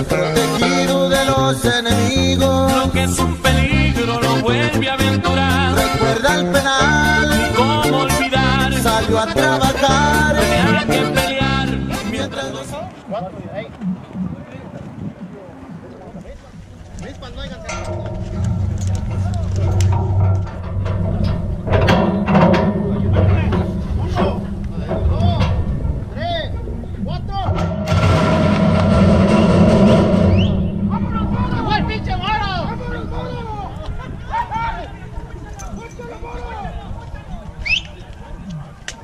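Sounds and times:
background music: 0.0 - 12.9
indistinct voices: 0.0 - 39.0
low rumble: 10.2 - 35.6.

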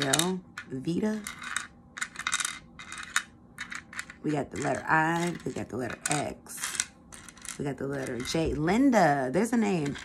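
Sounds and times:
wooden tiles clicking and scraping: 0.0 - 8.6, 9.8 - 10.0.

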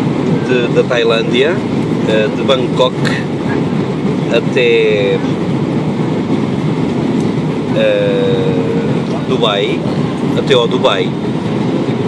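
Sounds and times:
airliner cabin noise: 0.0 - 12.0.

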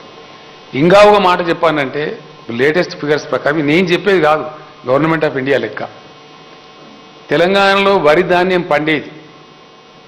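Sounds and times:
electrical mains hum: 0.0 - 10.0
man speaking into a microphone: 0.7 - 6.1, 7.3 - 9.3.

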